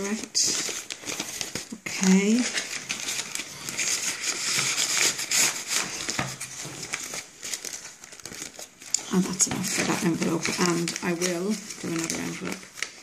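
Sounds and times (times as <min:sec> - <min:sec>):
paper rustling and crinkling: 0:00.0 - 0:13.0.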